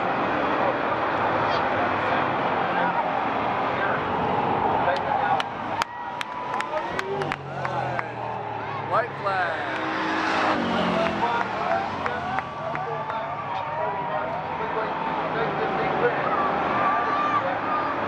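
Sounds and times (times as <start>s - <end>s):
spectators chattering: 0.0s - 18.0s
stock car engine running: 5.4s - 16.9s.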